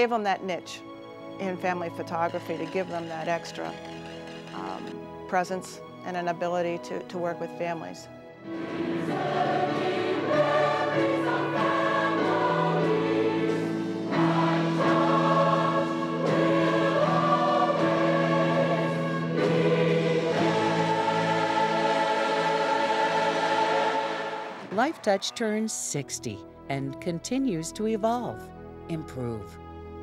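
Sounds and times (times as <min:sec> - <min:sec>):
large choir singing: 0:08.4 - 0:24.8.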